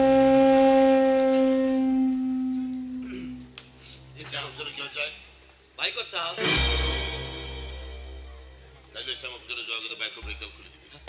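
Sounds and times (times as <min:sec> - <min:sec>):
sustained musical note: 0:00.0 - 0:04.8, 0:06.3 - 0:09.0.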